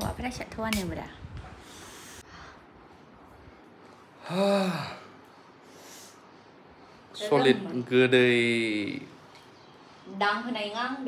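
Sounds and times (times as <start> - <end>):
man gasping: 4.2 - 5.2.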